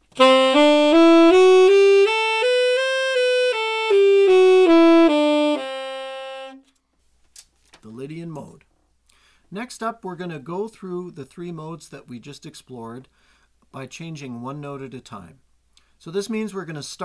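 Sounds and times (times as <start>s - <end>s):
tenor saxophone playing a scale: 0.0s - 6.7s.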